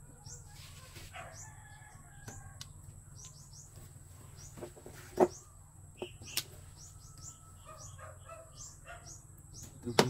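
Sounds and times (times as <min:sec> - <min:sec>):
small bird chirping: 0:00.0 - 0:10.0.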